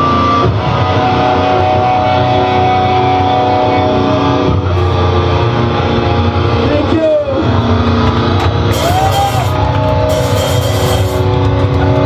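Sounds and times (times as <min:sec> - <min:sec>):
drumming: 0:08.0 - 0:12.0
distorted electric guitar chord: 0:08.7 - 0:11.7.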